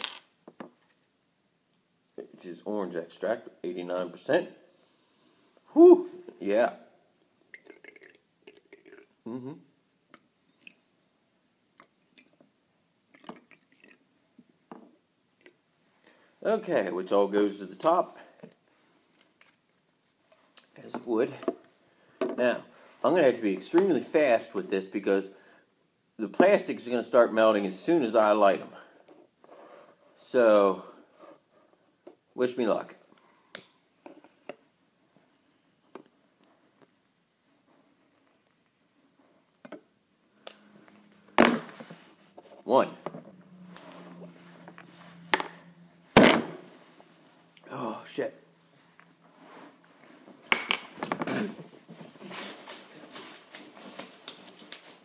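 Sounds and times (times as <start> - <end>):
liquid pouring and dripping: 7.4 - 9.2, 13.1 - 14.1.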